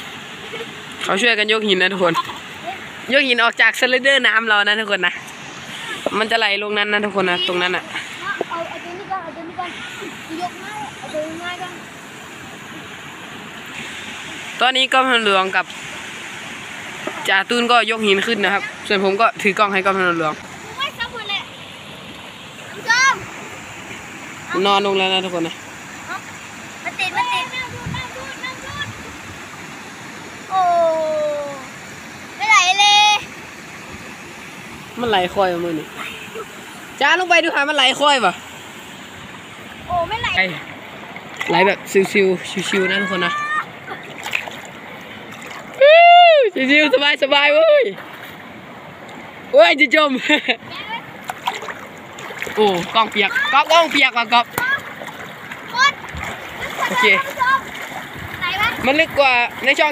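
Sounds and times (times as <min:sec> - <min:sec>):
running water rushing: 0:00.0 - 0:59.9
stream flowing over rocks: 0:00.0 - 0:59.9
water splashing: 0:00.0 - 0:59.9
person calling out: 0:30.5 - 0:31.7, 0:42.8 - 0:43.7.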